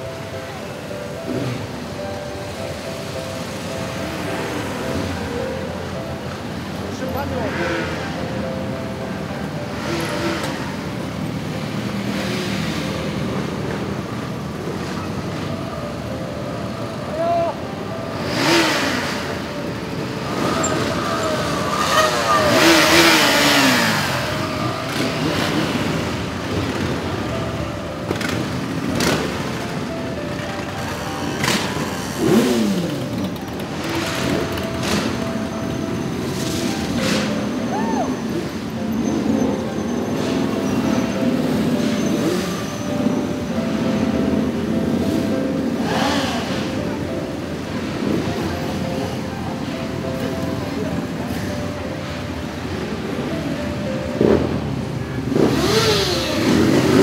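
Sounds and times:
motorcycles riding past: 3.4s - 15.5s, 18.1s - 57.0s
motorcycle engine revving: 9.6s - 15.4s, 18.1s - 29.9s, 30.8s - 37.5s, 40.2s - 47.0s, 54.2s - 57.0s.

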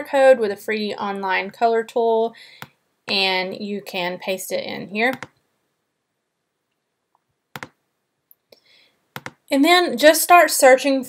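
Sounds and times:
computer clicks: 7.6s - 7.8s, 9.2s - 9.4s.

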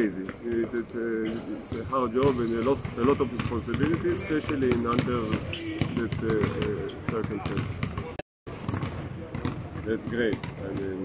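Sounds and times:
basketballs bouncing on hardwood: 1.7s - 8.1s, 8.7s - 11.0s.

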